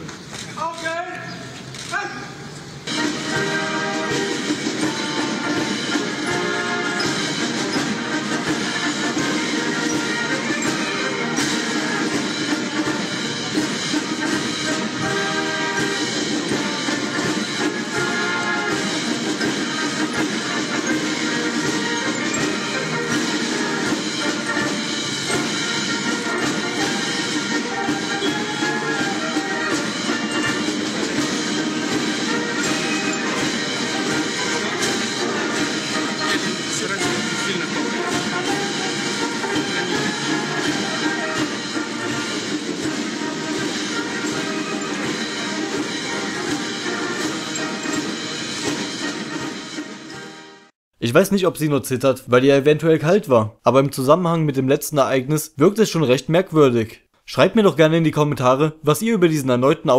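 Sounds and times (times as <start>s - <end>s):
military brass band playing: 1.7s - 50.7s.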